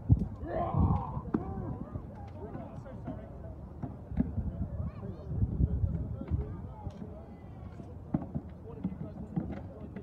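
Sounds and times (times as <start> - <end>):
people shouting and talking: 0.3 - 10.0.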